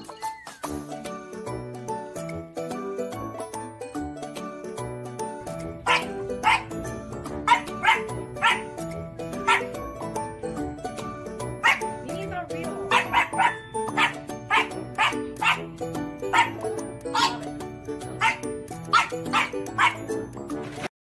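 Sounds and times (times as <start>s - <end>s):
background music: 0.0s - 20.9s
puppy barking: 5.8s - 8.8s, 9.4s - 9.8s, 11.6s - 12.0s, 12.9s - 17.6s, 18.2s - 20.2s.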